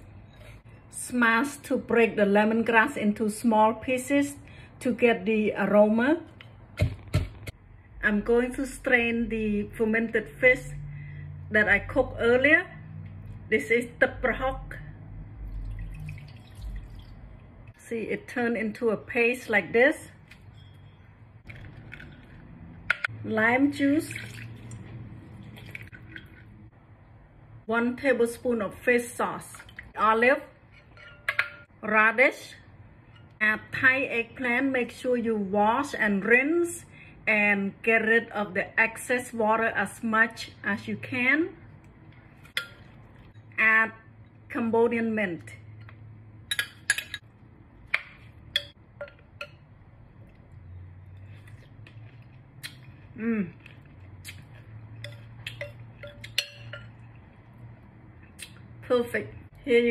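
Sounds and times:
juice dripping into a bowl: 15.4s - 17.7s, 21.4s - 22.8s, 24.1s - 26.7s
metal spoon clinking on glass bowls: 20.3s - 22.2s, 30.7s - 31.7s, 45.8s - 47.3s, 48.5s - 49.7s, 55.0s - 57.2s.

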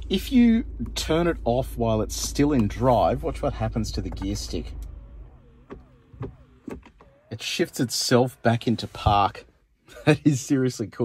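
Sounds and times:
faint wavering motor whine: 0.4s - 9.4s.

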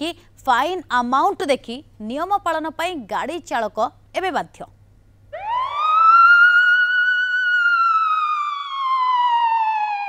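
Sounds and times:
siren wail winding down: 5.3s - 10.0s.

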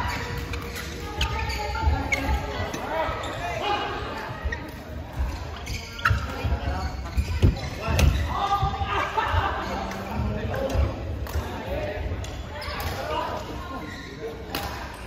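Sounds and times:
voices talking in echoing hall: 0.0s - 15.0s.

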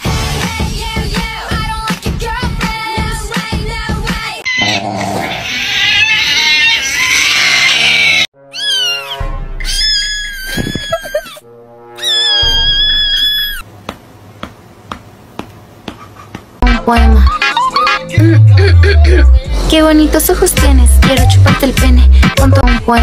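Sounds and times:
music: 0.0s - 4.4s, 8.3s - 9.9s, 16.6s - 23.0s
cat meowing: 8.0s - 11.4s, 12.0s - 13.6s.

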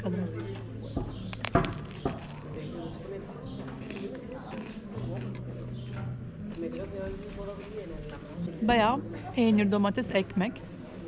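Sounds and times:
crunching bite into crusty bread: 1.2s - 2.8s, 3.7s - 8.2s.

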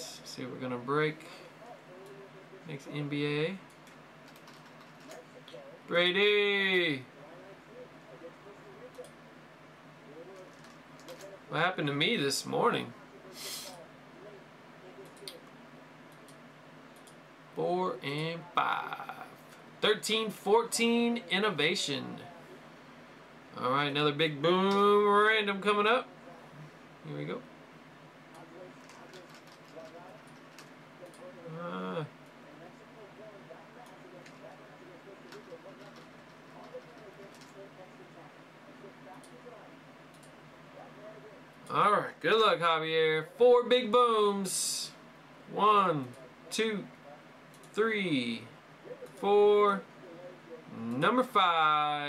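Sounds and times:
man speaking: 0.0s - 3.7s, 5.3s - 9.0s, 10.1s - 15.4s, 17.6s - 22.6s, 23.5s - 27.5s, 31.0s - 39.7s, 40.8s - 52.0s
faint low voices: 1.2s - 6.0s, 6.9s - 11.7s, 12.8s - 16.2s, 21.2s - 23.5s, 26.0s - 27.1s, 27.9s - 41.8s, 48.5s - 51.1s
keyboard keys clicking: 3.8s - 5.2s, 28.8s - 31.2s
soft clicks: 16.1s - 17.2s, 40.1s - 40.4s.

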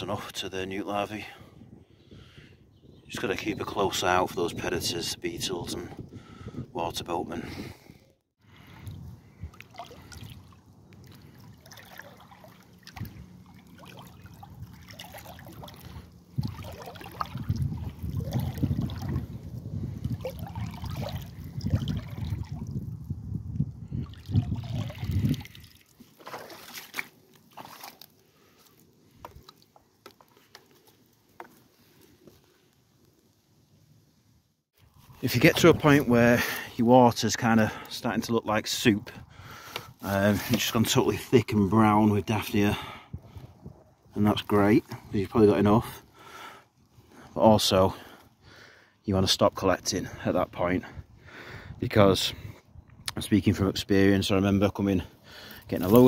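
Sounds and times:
water sloshing and trickling: 8.4s - 33.5s
water drips: 8.6s - 22.8s, 24.0s - 31.6s
net swishing through water: 9.5s - 19.3s, 20.1s - 22.7s, 24.2s - 28.9s.

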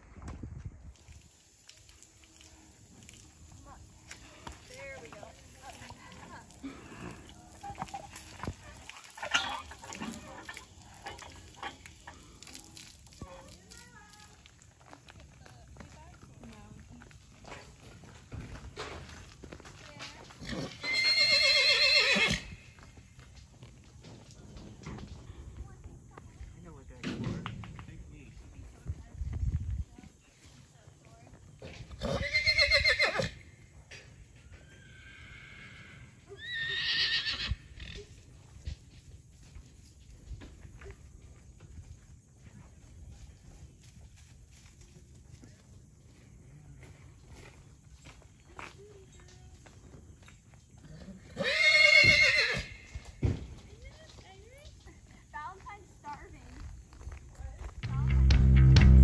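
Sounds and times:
horse whinnying: 20.4s - 22.8s, 31.9s - 33.5s, 34.6s - 38.0s, 51.0s - 52.9s.

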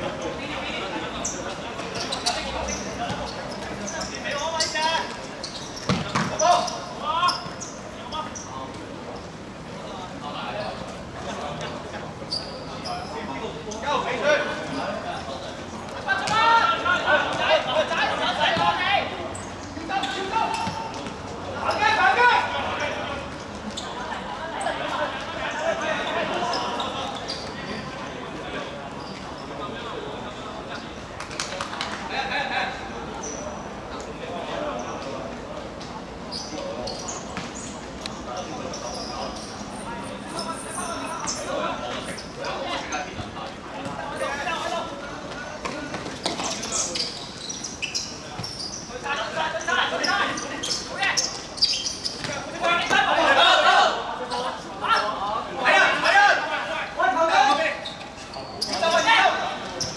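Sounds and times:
players shouting: 16.0s - 23.2s, 52.3s - 57.9s.

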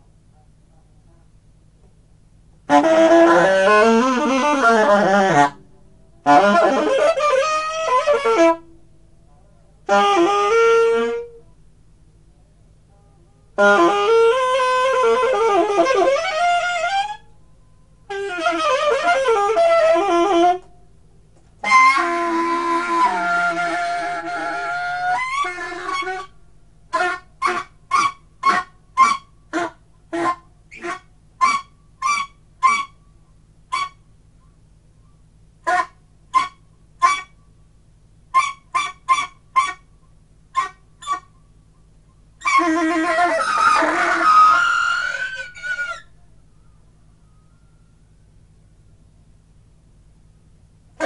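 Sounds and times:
low steady hum: 0.0s - 51.0s
saxophone honking notes: 2.6s - 8.8s, 9.8s - 11.4s, 12.8s - 17.3s, 18.0s - 20.8s, 21.6s - 33.0s, 42.4s - 46.2s.

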